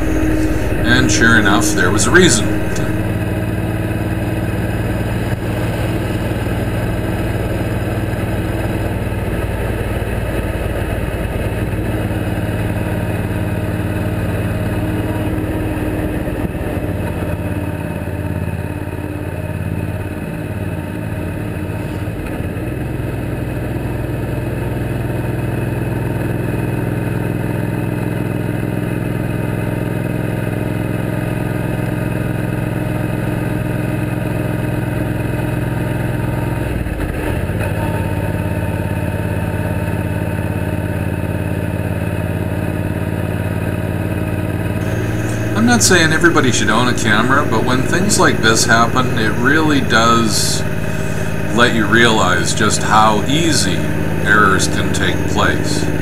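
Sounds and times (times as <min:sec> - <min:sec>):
motorcycle engine cruising: 0:00.0 - 0:09.7, 0:44.3 - 0:56.0.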